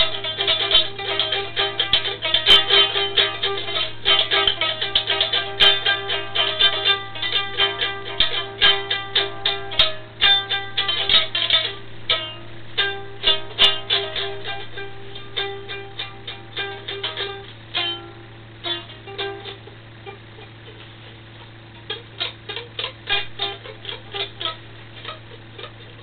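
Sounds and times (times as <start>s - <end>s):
low hum: 0.0s - 26.0s
plucked string music: 0.0s - 26.0s.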